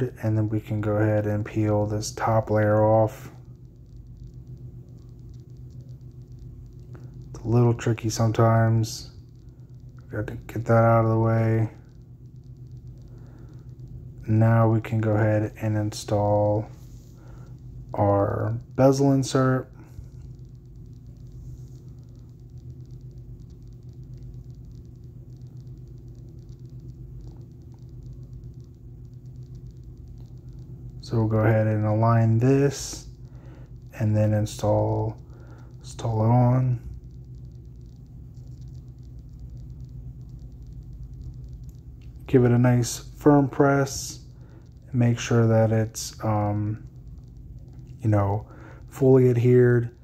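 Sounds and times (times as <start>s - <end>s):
low steady hum: 0.0s - 50.0s.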